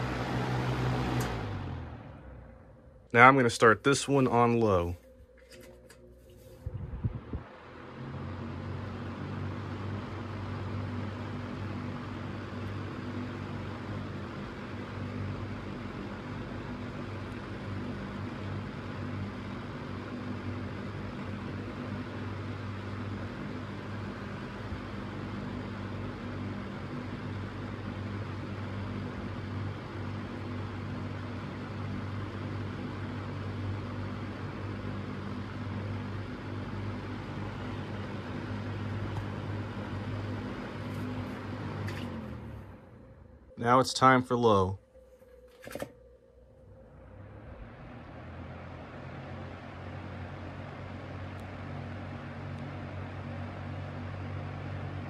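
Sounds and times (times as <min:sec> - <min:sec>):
fan motor hum: 0:00.0 - 0:55.0.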